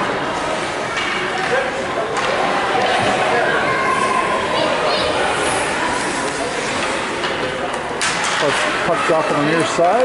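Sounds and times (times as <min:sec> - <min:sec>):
murmur of many voices: 0:00.0 - 0:10.0.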